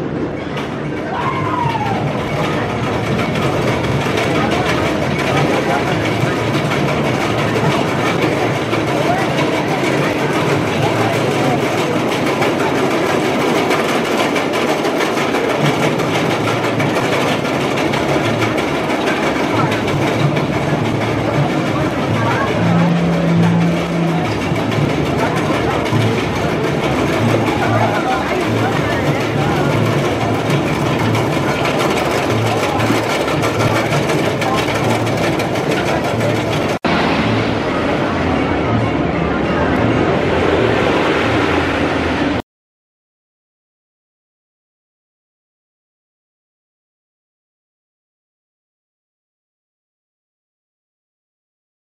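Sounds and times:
roller coaster rumbling on track: 0:00.0 - 0:42.4.

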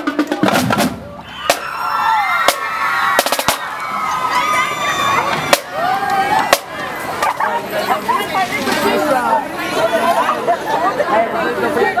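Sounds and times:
people talking at once: 0:03.3 - 0:12.0.

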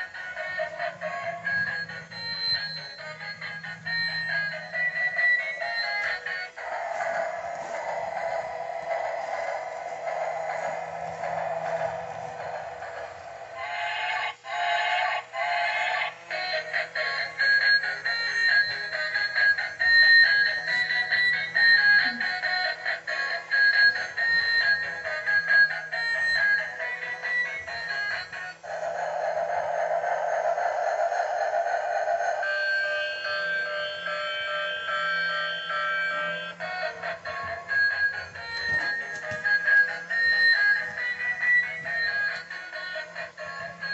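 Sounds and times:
electronic toy melody: 0:00.0 - 0:43.9.

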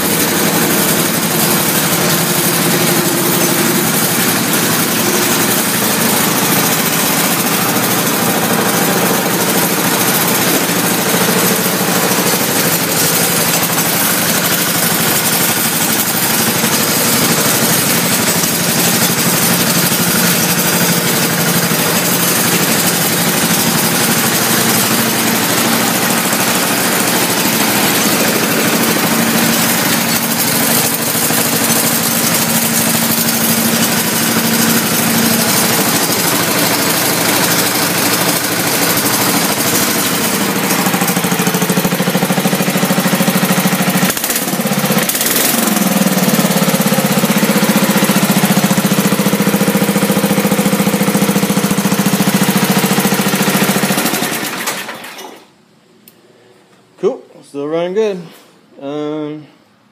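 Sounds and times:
garden tractor engine running: 0:00.0 - 0:55.4.

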